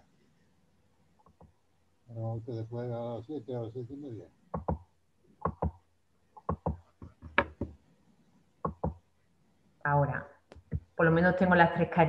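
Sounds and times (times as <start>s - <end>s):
computer mouse clicking: 4.6s - 4.8s, 5.4s - 5.8s, 6.4s - 7.7s, 8.6s - 9.0s.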